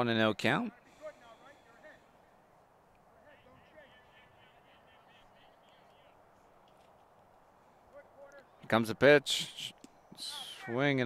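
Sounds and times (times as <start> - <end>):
faint distant voices calling: 0.6 - 11.0.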